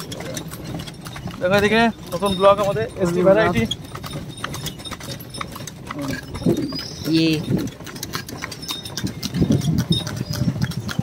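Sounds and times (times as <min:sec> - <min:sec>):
horse hooves on paved road: 0:00.0 - 0:11.0.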